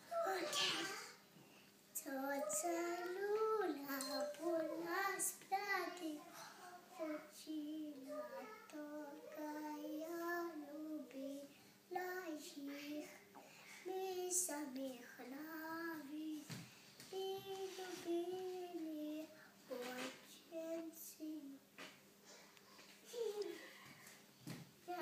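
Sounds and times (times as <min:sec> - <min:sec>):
girl singing unaccompanied: 0:01.9 - 0:21.8.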